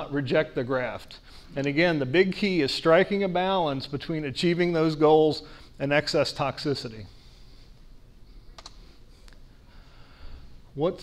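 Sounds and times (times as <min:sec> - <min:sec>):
short clicks: 0:08.6 - 0:09.4.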